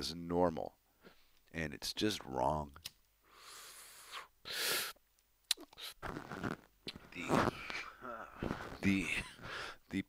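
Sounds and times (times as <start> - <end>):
man drawing breath: 3.2 - 5.0, 9.4 - 9.8
man's sharp burst of breath: 3.3 - 5.0.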